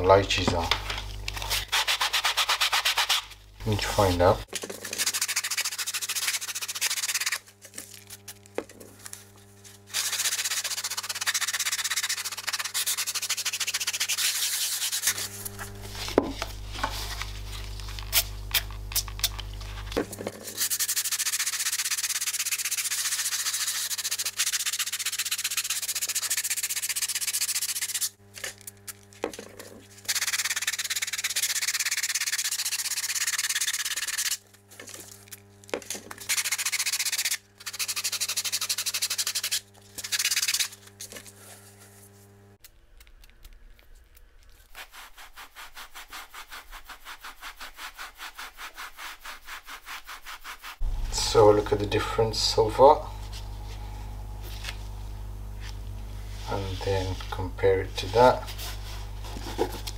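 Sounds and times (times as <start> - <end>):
foam block scrubbing fabric: 1.5 - 7.6, 9.7 - 18.4, 20.5 - 28.2, 44.7 - 59.9.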